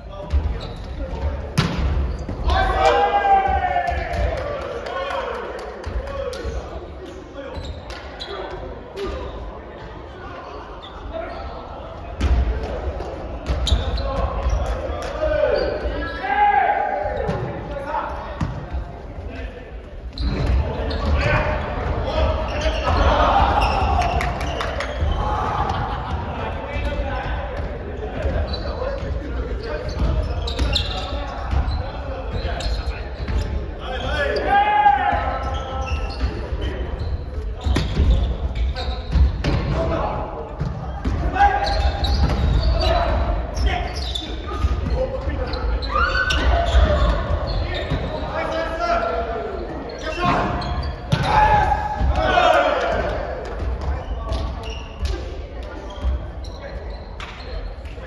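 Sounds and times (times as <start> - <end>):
players calling out: 0.2 - 18.6, 20.1 - 55.2.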